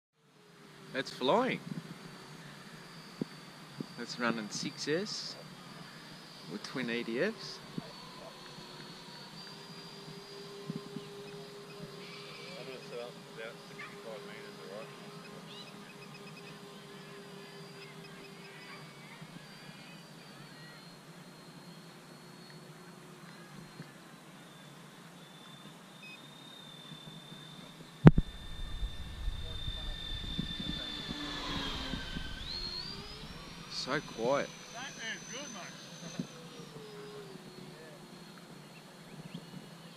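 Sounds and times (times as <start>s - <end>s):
electric ducted fans whining: 0.2s - 39.9s
low rumble: 28.1s - 33.9s.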